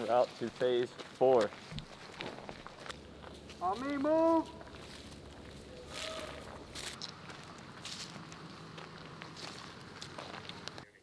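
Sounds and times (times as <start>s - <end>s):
boots walking on gravel: 0.0s - 10.8s
faint low rumble: 4.4s - 10.9s.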